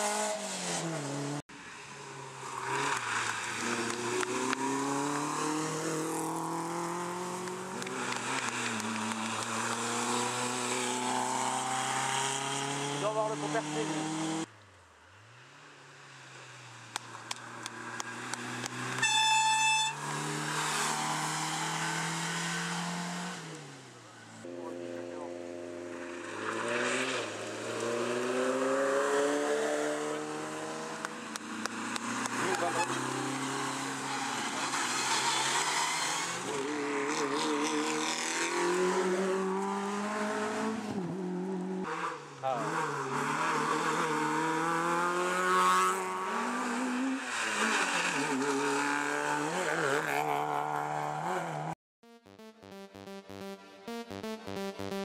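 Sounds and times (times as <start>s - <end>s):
rally car engines revving: 0.0s - 14.5s, 15.2s - 51.8s.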